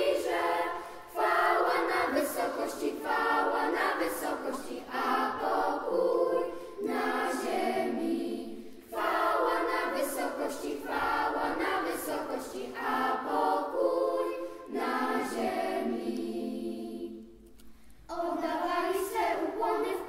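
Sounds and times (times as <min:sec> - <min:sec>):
children's choir singing a carol: 0:00.0 - 0:17.4, 0:18.1 - 0:20.0.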